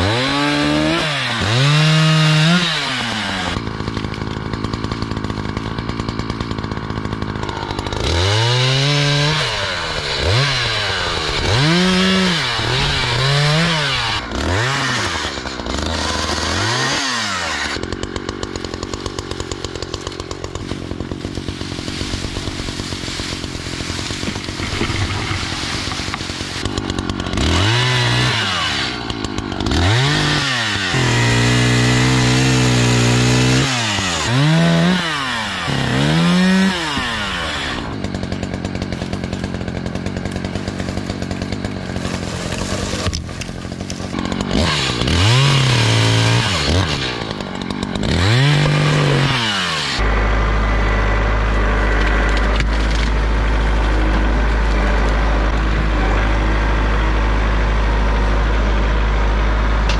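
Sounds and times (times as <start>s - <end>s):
chainsaw cutting wood: 0.0s - 59.9s.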